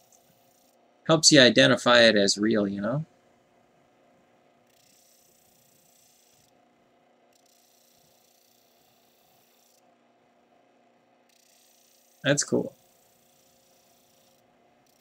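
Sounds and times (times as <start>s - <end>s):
low steady hum: 0.0s - 4.6s.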